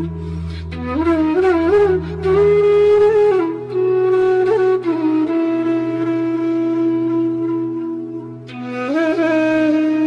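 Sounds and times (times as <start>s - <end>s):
flute melody: 0.0s - 10.0s.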